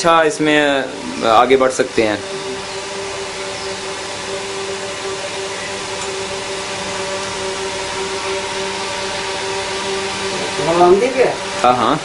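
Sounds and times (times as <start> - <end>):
ceiling fan whirring hum: 0.0 - 12.0.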